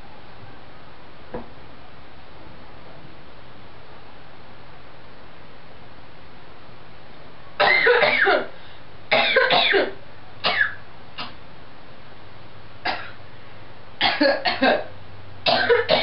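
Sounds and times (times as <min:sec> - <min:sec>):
person coughing: 0:07.6 - 0:08.5, 0:09.1 - 0:11.3, 0:12.9 - 0:13.2, 0:14.0 - 0:14.9, 0:15.5 - 0:16.0.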